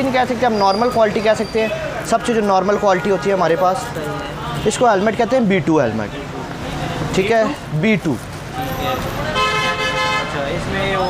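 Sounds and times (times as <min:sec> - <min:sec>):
vehicle horn: 0:09.2 - 0:10.4.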